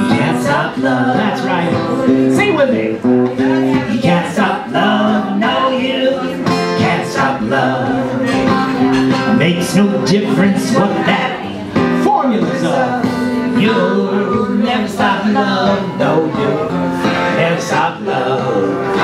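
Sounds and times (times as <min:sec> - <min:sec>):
man and woman singing: 0:00.0 - 0:19.0
strummed acoustic guitar: 0:00.0 - 0:19.0.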